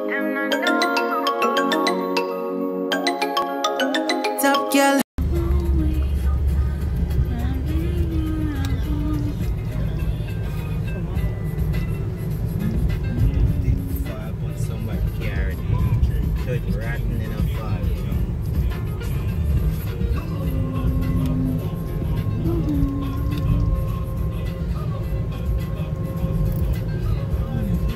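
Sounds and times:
song playing in car: 0.0s - 27.9s
car road rumble from inside: 5.2s - 27.9s.

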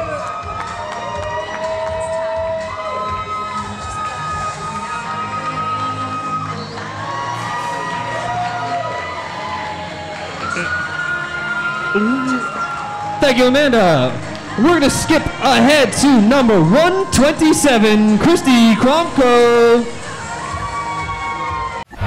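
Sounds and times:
audience cheering and shouting: 0.0s - 21.8s
music playing: 0.0s - 22.0s.

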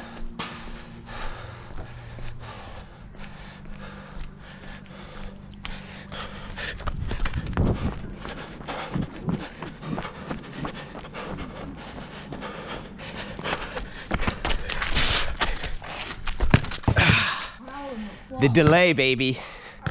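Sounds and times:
person panting hard: 0.0s - 18.4s, 19.3s - 19.9s
footsteps on concrete: 0.0s - 19.9s.

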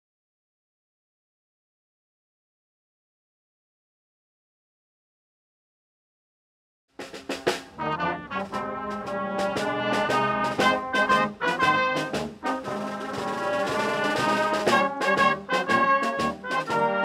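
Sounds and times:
brass band playing: 7.0s - 17.0s
drum kit beat: 7.0s - 17.0s.

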